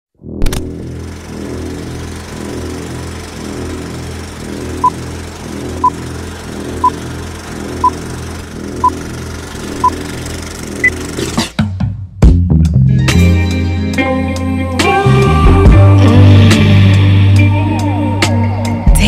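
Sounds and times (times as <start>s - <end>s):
film projector clatter: 0.7s - 11.6s.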